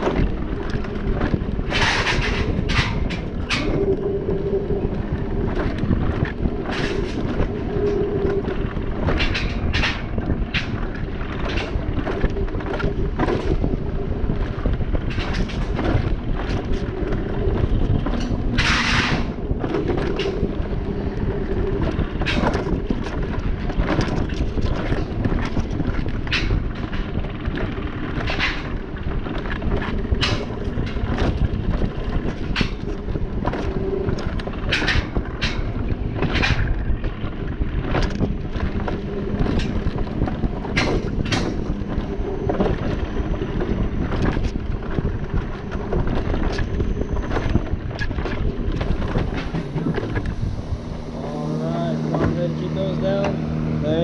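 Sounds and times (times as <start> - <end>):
cart wheels rumbling on rails: 0.0 - 54.0
wind rushing over microphone: 0.0 - 54.0.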